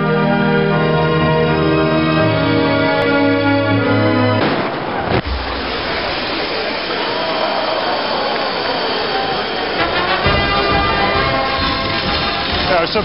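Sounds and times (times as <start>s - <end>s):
music: 0.0s - 4.5s, 5.3s - 13.0s
rushing hissing noise: 5.2s - 13.0s.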